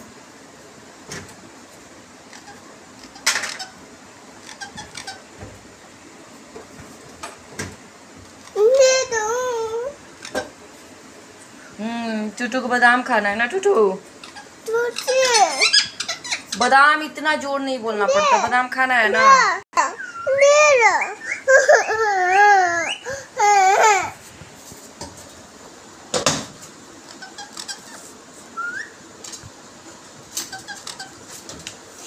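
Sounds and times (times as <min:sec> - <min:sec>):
parrot squeaks: 0:02.3 - 0:03.8, 0:04.4 - 0:05.3, 0:14.2 - 0:16.7, 0:20.0 - 0:23.1, 0:27.1 - 0:29.0, 0:30.4 - 0:31.3
parakeet talking: 0:04.4 - 0:05.3, 0:14.2 - 0:16.8, 0:18.0 - 0:24.1, 0:27.1 - 0:28.1, 0:30.5 - 0:31.2.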